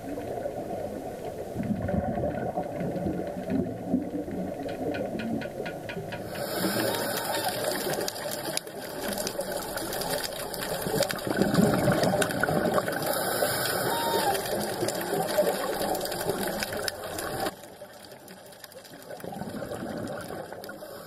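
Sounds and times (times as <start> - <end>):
dense crackle of clicks: 0.0 - 21.0
muffled underwater noise: 0.0 - 21.0.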